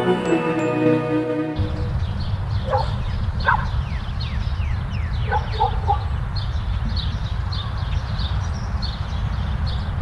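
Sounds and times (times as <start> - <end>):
steady low rumble: 1.6 - 5.2
birds chirping: 1.6 - 10.0
distant dog barking: 2.6 - 3.8, 5.2 - 6.1.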